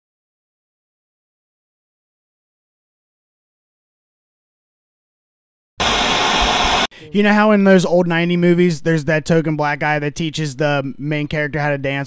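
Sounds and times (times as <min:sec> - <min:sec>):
loud static hiss: 0:05.8 - 0:07.0.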